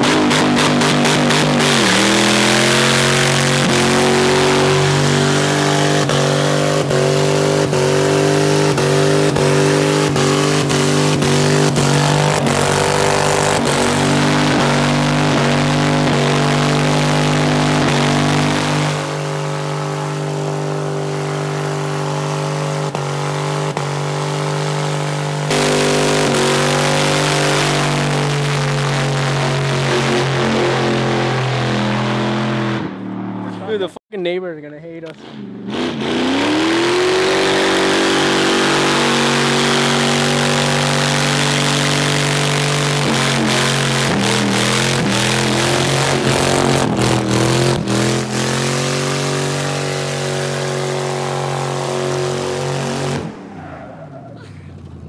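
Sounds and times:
truck engine at high revs: 0.0 - 34.0, 35.0 - 55.0.

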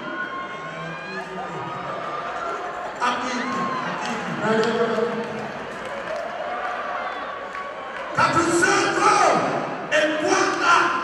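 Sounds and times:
crowd noise: 0.0 - 11.0
man speaking through microphone: 8.2 - 11.0.

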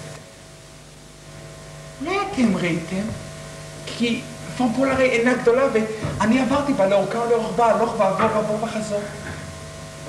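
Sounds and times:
electrical hum with hiss: 0.0 - 10.0.

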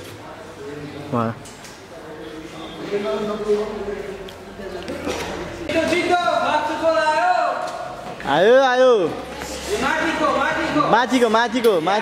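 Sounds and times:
man talking: 5.7 - 12.0.

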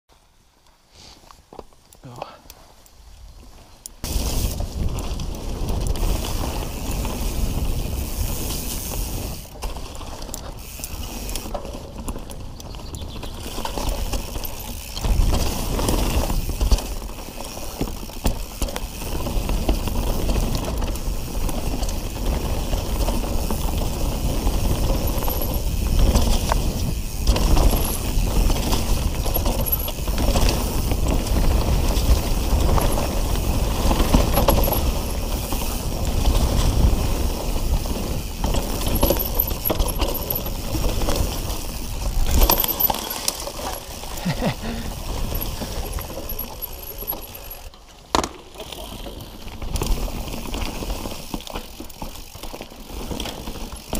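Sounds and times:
bike tyres crunching over leaves: 2.6 - 53.9
bike chain and frame rattling: 4.0 - 53.9.

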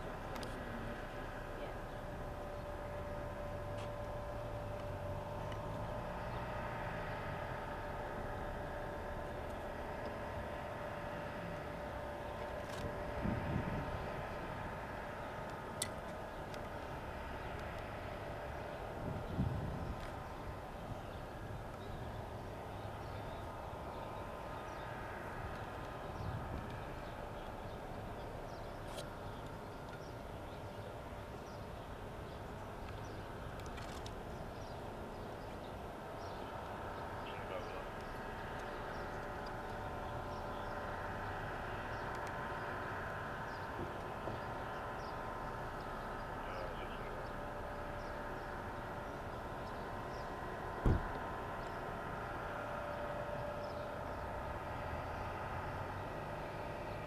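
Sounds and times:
vehicle traffic: 0.0 - 57.0.

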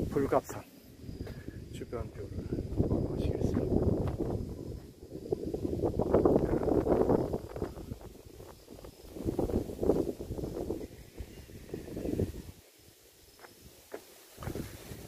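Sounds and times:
wind buffeting microphone: 0.0 - 12.6, 14.4 - 15.0.

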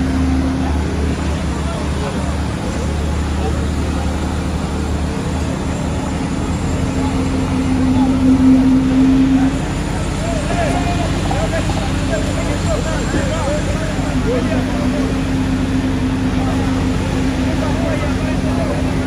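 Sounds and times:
crowd chattering: 0.0 - 19.0
excavator diesel engine running: 0.0 - 19.0.

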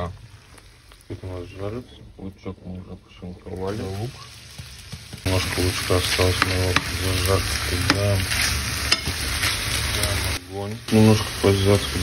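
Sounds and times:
meat and onion sizzling in oil: 0.0 - 1.9, 3.4 - 12.0.

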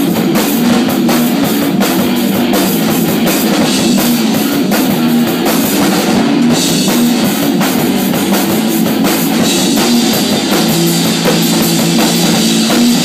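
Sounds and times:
electric guitar: 0.0 - 13.0
pounding drum kit: 0.0 - 13.0.

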